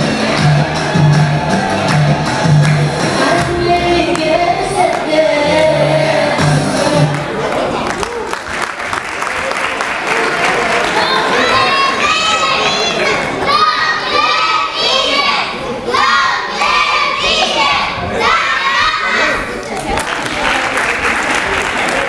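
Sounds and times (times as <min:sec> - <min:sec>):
children shouting and cheering: 0:00.0 - 0:08.4, 0:10.6 - 0:19.9
crowd hubbub: 0:00.0 - 0:22.0.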